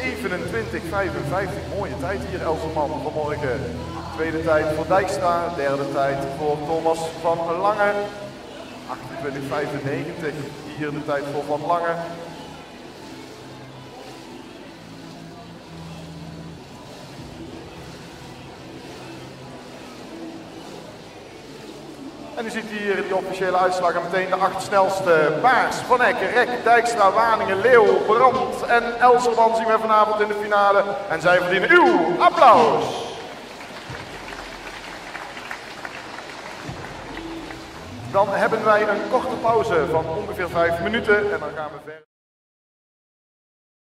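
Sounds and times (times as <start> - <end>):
murmur of distant voices: 0.0 - 41.9
faint music of low notes: 0.0 - 42.0
pool water lapping: 0.0 - 42.0
audience applauding: 32.5 - 39.4.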